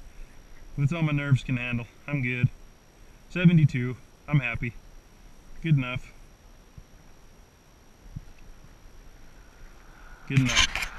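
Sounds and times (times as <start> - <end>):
low background rumble: 0.0 - 10.9.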